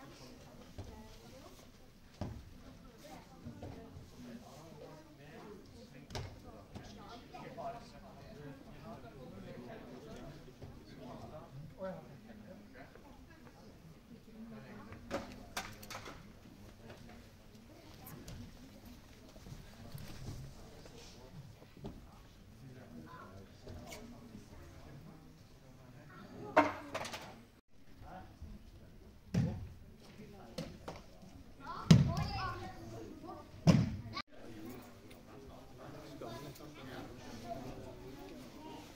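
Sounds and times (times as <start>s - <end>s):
murmur of voices: 0.0s - 38.9s.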